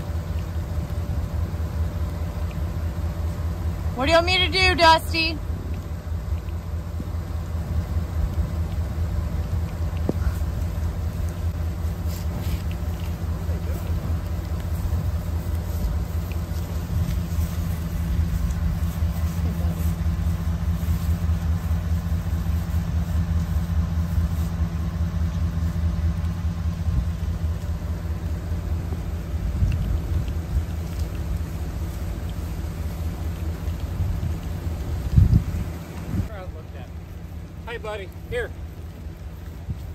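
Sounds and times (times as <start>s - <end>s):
vehicle engine idling: 0.0s - 39.9s.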